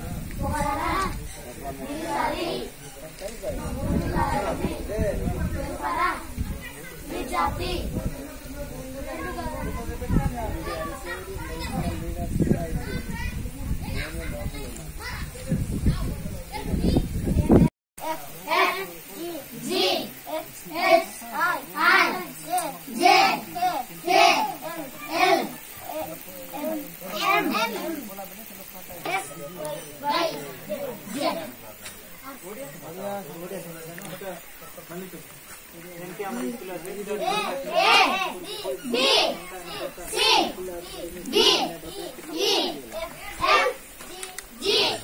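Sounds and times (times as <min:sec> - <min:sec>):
children chattering and calling out: 0:00.0 - 0:45.0.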